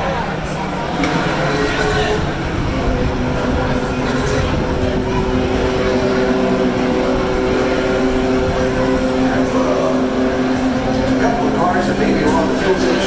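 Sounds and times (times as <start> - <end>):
distant race car engines droning: 0.0 - 13.0
indistinct voices: 0.0 - 13.0.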